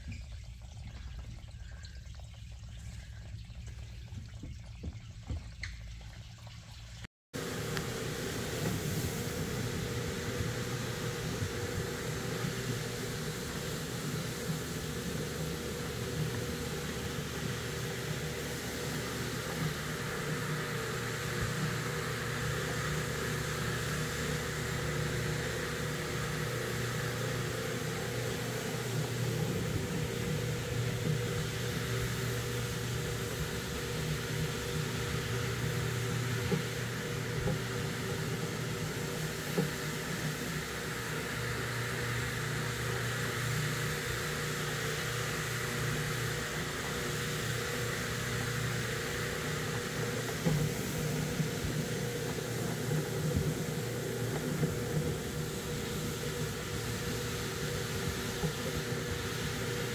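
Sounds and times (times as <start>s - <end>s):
floor machine motor hum: 7.4s - 59.9s.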